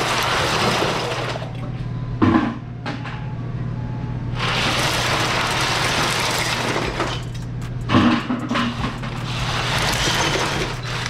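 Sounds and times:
crushed ice rattling onto cans: 0.0s - 1.5s, 4.4s - 7.4s, 8.8s - 11.0s.

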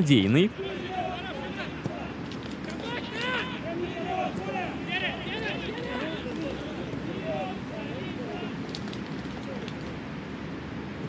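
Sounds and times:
players shouting: 0.0s - 8.7s
background murmur: 0.0s - 10.2s.

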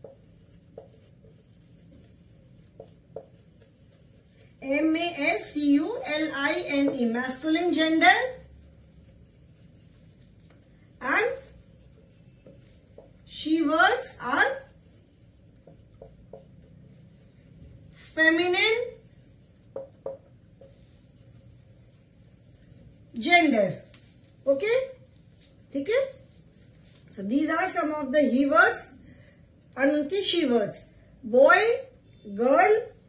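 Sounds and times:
marker pen writing on whiteboard: 0.0s - 28.8s
marker tip tapping board: 2.7s - 3.6s, 15.6s - 16.7s, 19.7s - 20.8s.

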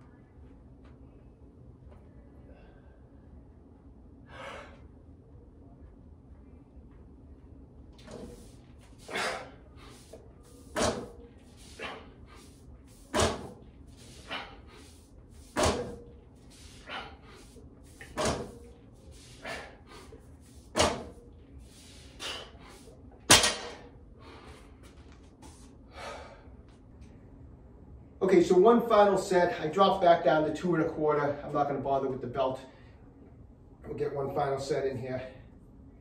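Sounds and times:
forceful breaths: 8.1s - 23.0s.

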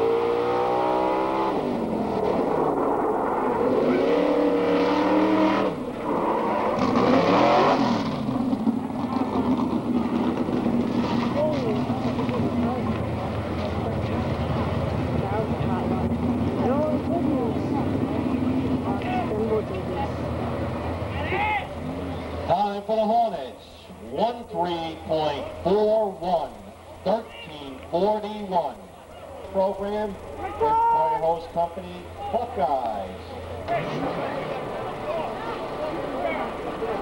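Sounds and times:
fire truck engine revving: 0.0s - 22.5s, 32.9s - 37.0s
people shouting: 21.1s - 21.8s, 30.3s - 31.3s, 33.7s - 37.0s.

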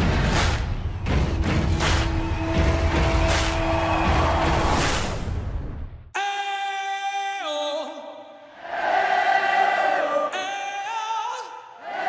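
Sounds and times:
whoosh: 3.3s - 5.9s.

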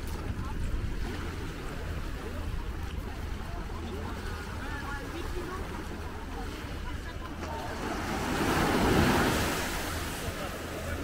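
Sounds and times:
surf wave washing on sand: 0.0s - 11.0s.

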